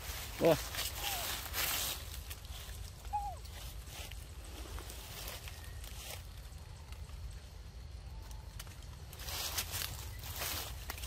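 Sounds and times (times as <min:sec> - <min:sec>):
baby monkey squeaky call: 0:03.0 - 0:03.6.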